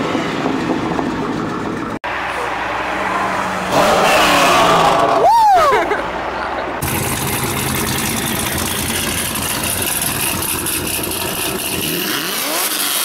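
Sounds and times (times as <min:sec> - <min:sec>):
car engine idling and revving: 0:00.0 - 0:05.0, 0:06.8 - 0:13.0.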